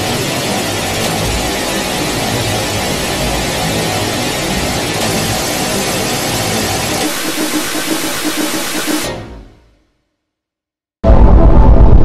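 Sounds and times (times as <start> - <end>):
pulsing mid-pitched tone: 7.0 - 9.1.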